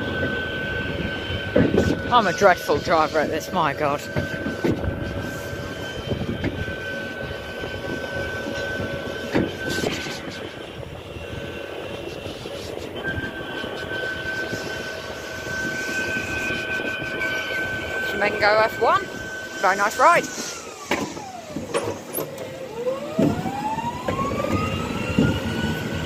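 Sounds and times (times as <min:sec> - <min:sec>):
thin high whine: 0:00.0 - 0:23.7
ride car wheels rumbling: 0:00.0 - 0:26.0.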